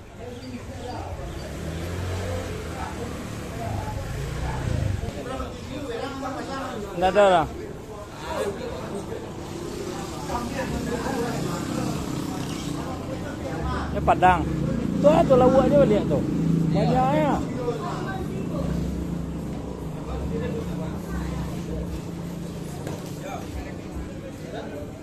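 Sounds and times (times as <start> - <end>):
low vehicle engine rumble: 0.0 - 6.6, 7.6 - 25.0
people talking and calling out: 0.0 - 25.0.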